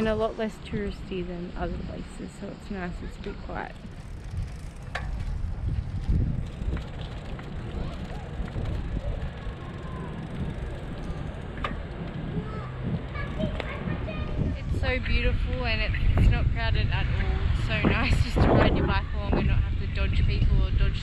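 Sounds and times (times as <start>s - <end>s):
faint voices: 0.0s - 21.0s
wind buffeting microphone: 0.0s - 21.0s.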